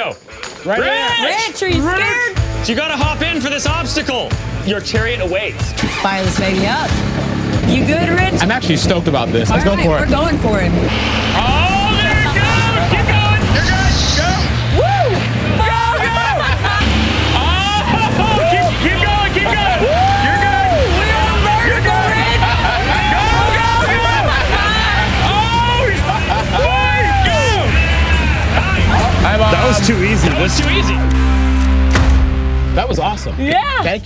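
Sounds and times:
background music: 0:00.0 - 0:34.0
people yelling excitedly: 0:00.7 - 0:02.4, 0:11.0 - 0:31.3, 0:33.4 - 0:34.0
diesel engine running: 0:04.3 - 0:32.8.

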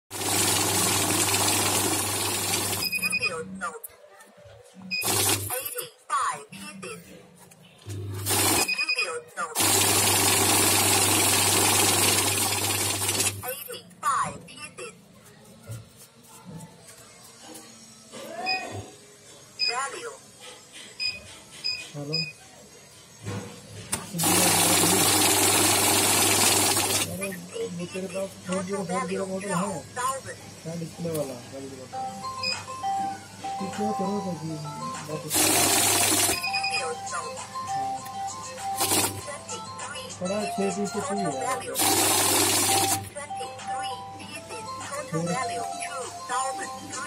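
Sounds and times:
banknote counting machine running: 0:00.1 - 0:03.3, 0:05.0 - 0:05.8, 0:08.1 - 0:09.0, 0:09.6 - 0:13.7, 0:24.1 - 0:27.4, 0:35.1 - 0:37.0, 0:38.6 - 0:39.4, 0:40.3 - 0:43.2
short electronic beeps: 0:02.8 - 0:03.5, 0:08.5 - 0:09.3, 0:32.1 - 0:34.4, 0:36.2 - 0:38.3.

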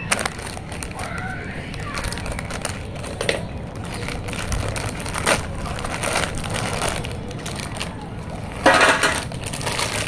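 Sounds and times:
chip packet crinkling: 0:00.0 - 0:10.0
chips shifting inside packet: 0:00.0 - 0:10.0.

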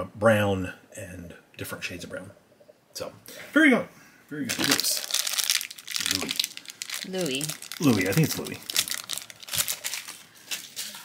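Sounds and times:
person speaking: 0:04.3 - 0:05.1, 0:05.9 - 0:09.1
plastic wrapper crinkling: 0:04.5 - 0:11.0.

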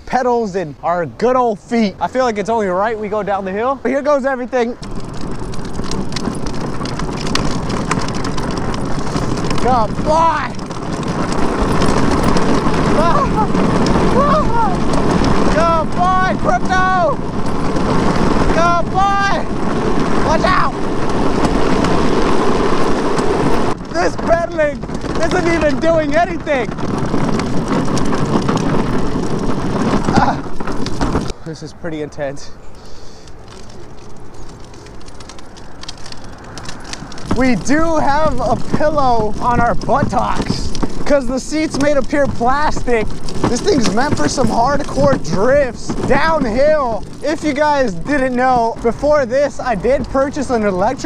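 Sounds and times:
wheels rolling on asphalt: 0:00.0 - 0:51.0
small clicks and rattles: 0:04.2 - 0:31.6, 0:32.2 - 0:51.0
wind on microphone: 0:04.7 - 0:31.4.

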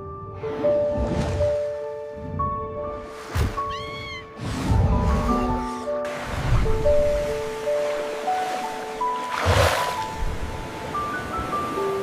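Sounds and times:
soft background music: 0:00.0 - 0:12.0
water splash: 0:06.1 - 0:10.6
rush of splashing water: 0:06.1 - 0:12.0.

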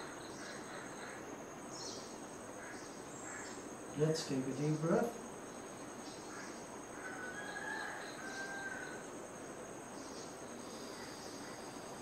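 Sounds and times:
faint bird calls: 0:00.0 - 0:03.8, 0:05.6 - 0:09.0, 0:10.0 - 0:12.0
high-pitched insect trill: 0:00.0 - 0:12.0.

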